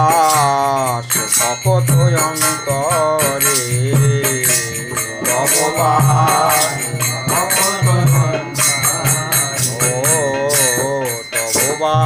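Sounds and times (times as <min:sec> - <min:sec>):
man singing devotional song: 0:00.0 - 0:12.0
small hand cymbal strikes: 0:00.0 - 0:12.0.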